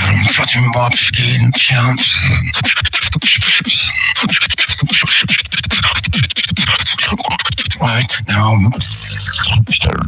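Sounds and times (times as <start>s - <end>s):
mouth clicks: 0.0s - 10.0s
person beatboxing: 0.0s - 10.0s.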